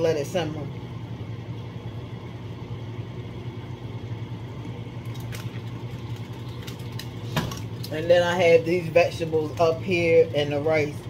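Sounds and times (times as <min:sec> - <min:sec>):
kitchen appliance humming: 0:00.0 - 0:11.0.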